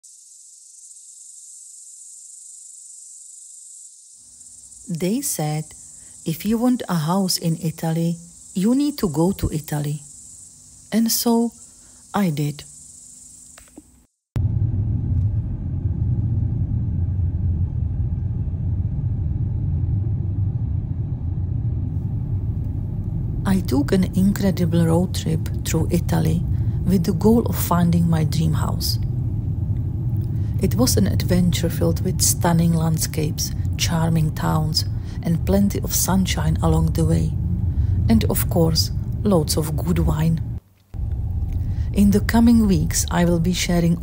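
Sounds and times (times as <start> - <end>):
insects chirring: 0.0 - 14.1, 22.1 - 44.0
car interior road and engine noise: 14.4 - 44.0.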